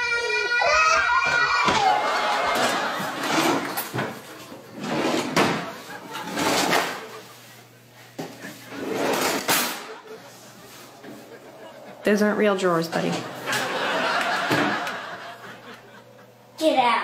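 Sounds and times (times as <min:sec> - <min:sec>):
drawer fronts rattling and knocking: 0:04.8 - 0:05.7.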